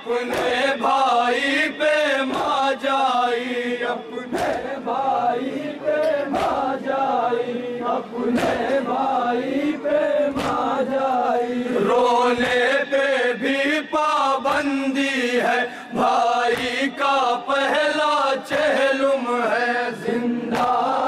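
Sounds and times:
men chanting in unison: 0.0 - 21.0
hands slapping chests: 0.3 - 0.7, 2.2 - 2.7, 4.3 - 4.8, 6.3 - 6.8, 8.3 - 8.8, 10.3 - 10.8, 20.5 - 20.9.

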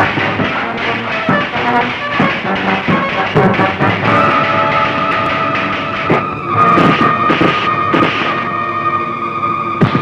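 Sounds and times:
wooden sticks swishing: 0.0 - 8.4
film music held tones: 0.0 - 10.0.

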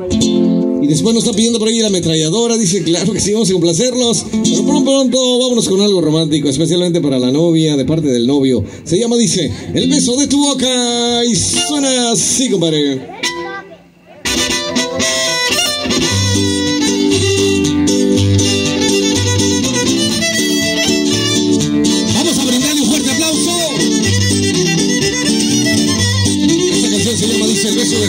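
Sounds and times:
strummed guitars: 0.0 - 5.8, 11.1 - 12.4, 13.1 - 28.0
repeating bass pattern: 4.3 - 5.1, 14.3 - 28.0
violin melody: 14.3 - 28.0.

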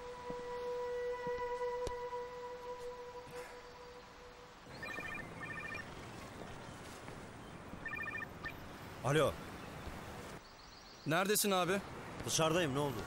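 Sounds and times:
held musical tone: 0.0 - 5.8
phone ringing with rapid beeps: 4.7 - 5.9, 7.8 - 8.6.

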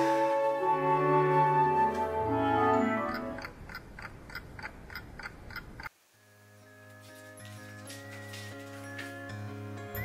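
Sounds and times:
orchestral music: 0.0 - 3.5
soft regular ticking: 3.4 - 5.9.

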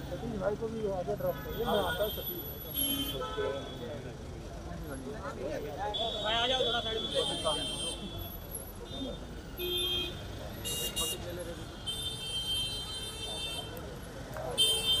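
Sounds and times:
faint chatter: 0.0 - 15.0
street traffic: 0.0 - 15.0.

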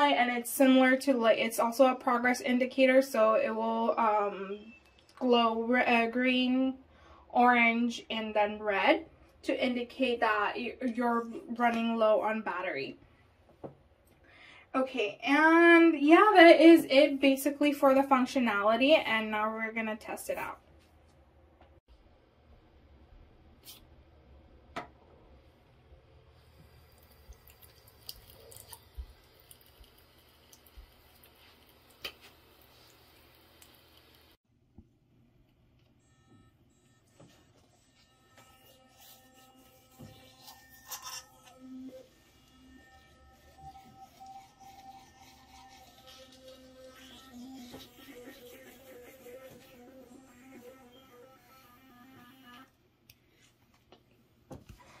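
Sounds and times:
electric toothbrush buzzing: 36.0 - 52.7.

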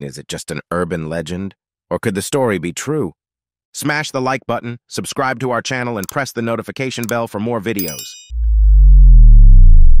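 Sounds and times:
deep synthesized bass tone: 8.3 - 10.0.

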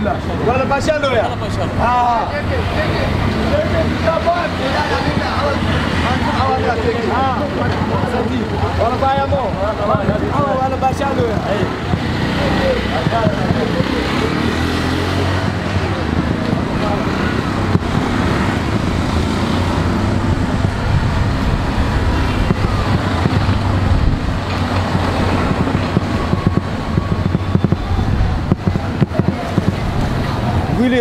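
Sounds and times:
auto-rickshaw engine running: 0.0 - 31.0
street traffic noise: 0.0 - 31.0.

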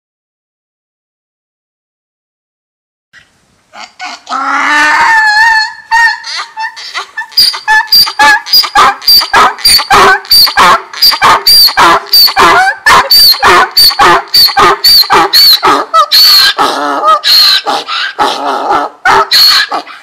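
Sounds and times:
donkey braying: 3.7 - 20.0.

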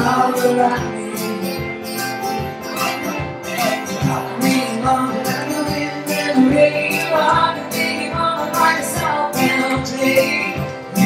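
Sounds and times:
acoustic guitars strumming: 0.0 - 11.0.

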